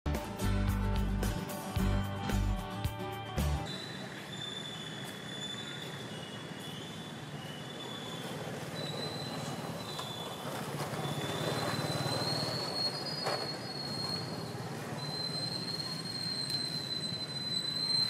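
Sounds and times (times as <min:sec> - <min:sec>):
steady outdoor noise: 0:00.1 - 0:18.0.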